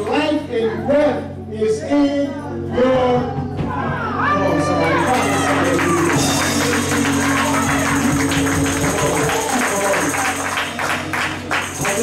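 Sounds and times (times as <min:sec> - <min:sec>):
keyboard chords: 0:00.0 - 0:12.0
rhythmic handclaps: 0:04.9 - 0:12.0
tambourine: 0:05.1 - 0:12.0.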